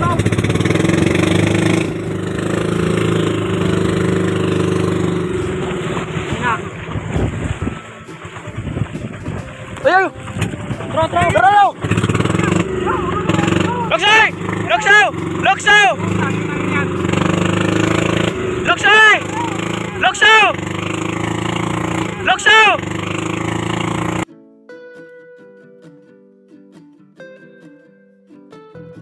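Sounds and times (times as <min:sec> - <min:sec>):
boat engine running: 0:00.0 - 0:24.2
soft guitar music: 0:00.0 - 0:29.0
person shouting calls: 0:12.7 - 0:16.7, 0:18.6 - 0:20.6, 0:22.0 - 0:22.9.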